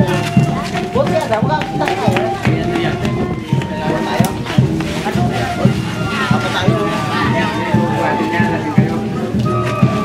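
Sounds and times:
brass band playing: 0.0s - 10.0s
drum beating: 0.0s - 10.0s
people's voices: 0.0s - 10.0s.

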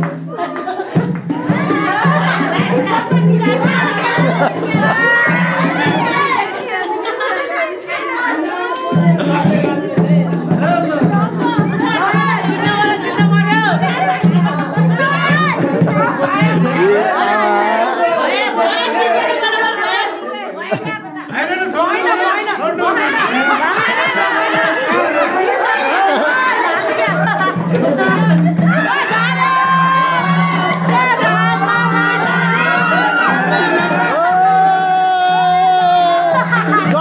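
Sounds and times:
crowd chatter: 0.0s - 37.0s
people talking and calling out: 0.0s - 37.0s.

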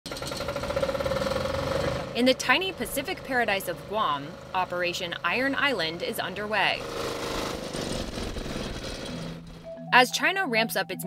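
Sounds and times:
engine running with pulsing throb: 0.1s - 9.7s.

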